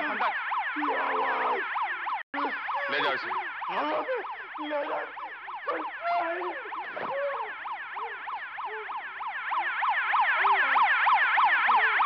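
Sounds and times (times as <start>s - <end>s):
warbling siren alarm: 0.0s - 12.0s.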